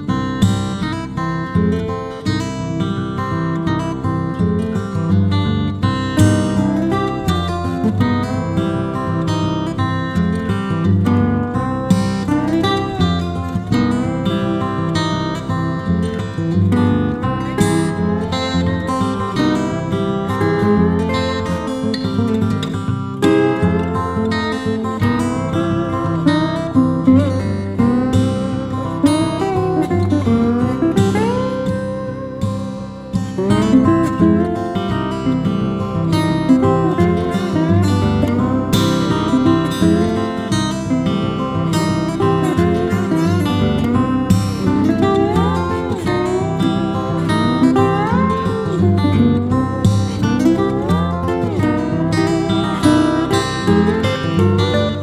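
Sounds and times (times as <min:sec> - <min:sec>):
acoustic guitar plucked and strummed: 0:00.0 - 0:55.0.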